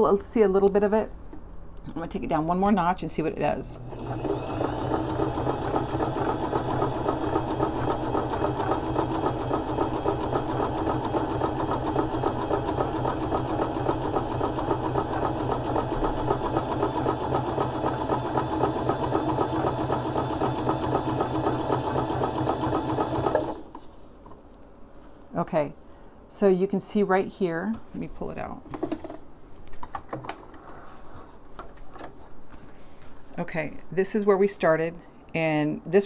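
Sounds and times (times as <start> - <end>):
electric sewing machine running: 3.8 - 23.7.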